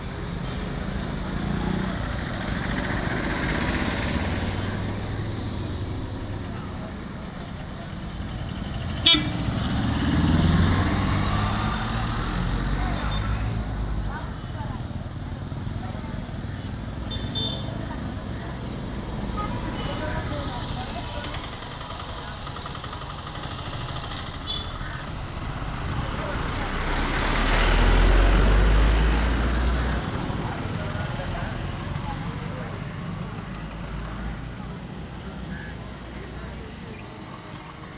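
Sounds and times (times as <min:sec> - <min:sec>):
vehicle passing: 0:00.0 - 0:06.4, 0:07.9 - 0:16.4, 0:25.2 - 0:37.9
road traffic rumble: 0:00.0 - 0:37.9.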